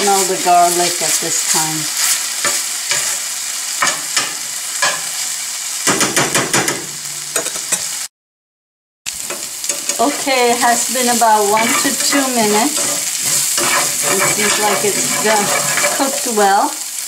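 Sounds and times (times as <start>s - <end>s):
spices sizzling in oil: 0.0s - 8.1s, 9.1s - 17.0s
metal spatula scraping a pan: 9.3s - 16.5s.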